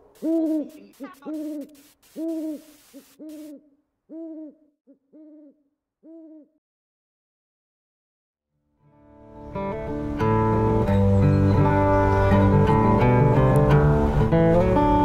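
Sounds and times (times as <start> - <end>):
faint hiss: 0.0 - 3.6
owl hoots: 0.0 - 6.6.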